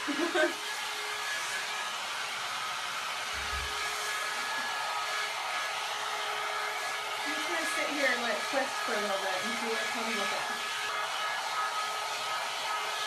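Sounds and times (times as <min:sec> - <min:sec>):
hot air brush motor whine: 0:00.0 - 0:13.0.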